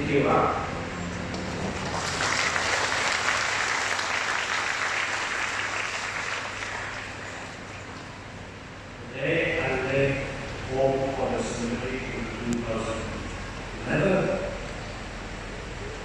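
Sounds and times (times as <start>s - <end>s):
congregation applauding: 1.4s - 8.0s.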